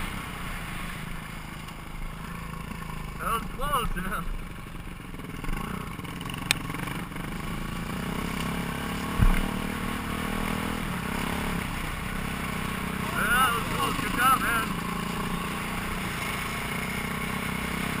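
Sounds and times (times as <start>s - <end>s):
motorcycle engine running: 0.0s - 18.0s
person speaking: 3.2s - 4.3s, 13.0s - 14.8s
low thump: 9.1s - 9.6s.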